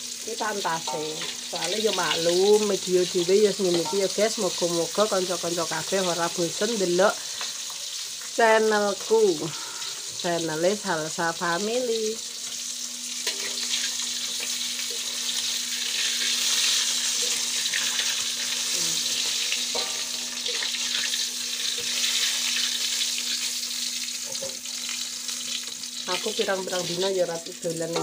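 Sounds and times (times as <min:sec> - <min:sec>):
fish frying in hot oil: 0:00.0 - 0:28.0.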